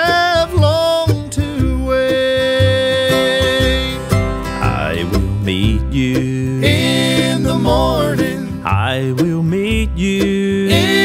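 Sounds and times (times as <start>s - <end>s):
bluegrass gospel band: 0.0s - 11.0s.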